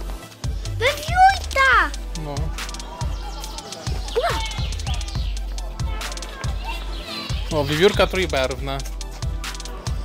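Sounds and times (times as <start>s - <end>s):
children's voices and chatter: 0.7s - 10.0s.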